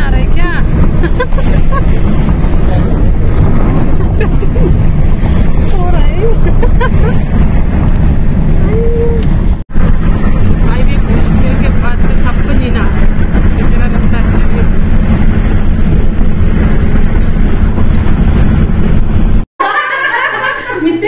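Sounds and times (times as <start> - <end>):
car road and engine rumble: 0.0 - 19.5.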